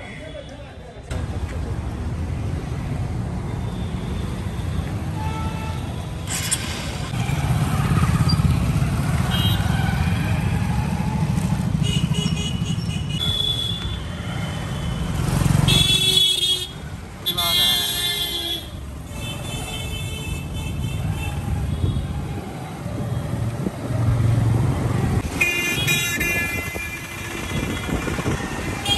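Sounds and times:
motorcycle and rickshaw engines: 1.0 - 28.9
vehicle horns honking: 11.8 - 14.0, 15.6 - 21.0, 25.3 - 28.9.

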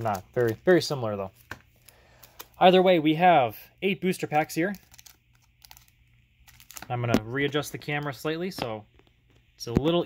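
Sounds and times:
foil wrapper crinkling: 4.6 - 8.2.

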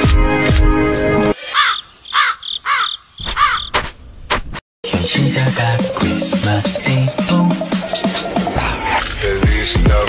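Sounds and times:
music: 0.0 - 1.4, 4.8 - 10.0
crow cawing: 1.5 - 3.8.

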